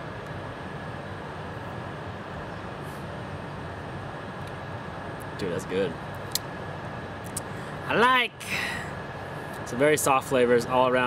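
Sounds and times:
faint steady hum: 0.0 - 11.0
man speaking: 5.4 - 6.0.

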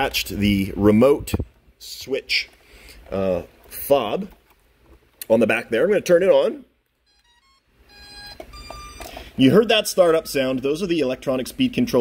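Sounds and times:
electronic startup tones: 7.1 - 10.5.

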